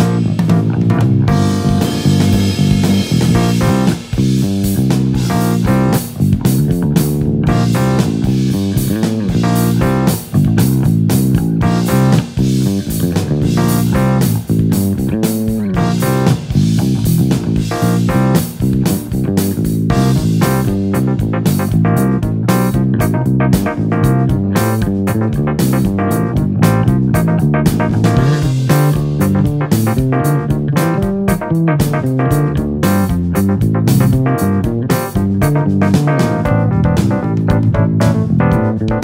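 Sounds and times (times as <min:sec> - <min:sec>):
backing track with drums: 0:00.0 - 0:39.0
electric bass plucked fingerstyle: 0:00.0 - 0:39.0.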